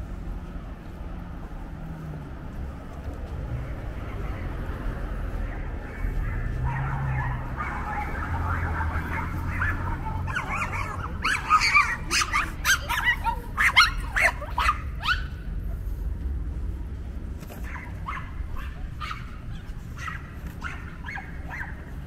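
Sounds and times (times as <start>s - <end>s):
dog barking: 5.4s - 15.4s, 17.6s - 22.0s
dog yapping faintly: 6.0s - 15.4s, 17.5s - 21.8s.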